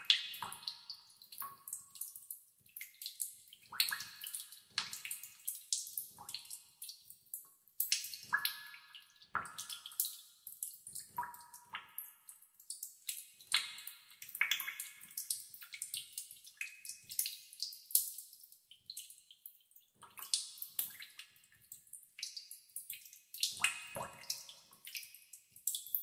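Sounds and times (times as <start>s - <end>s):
water dripping into pools: 0.0s - 26.0s.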